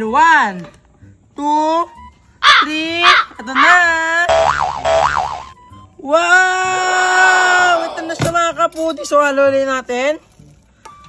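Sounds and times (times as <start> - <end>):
cartoon boing sound effect: 4.3 - 5.6.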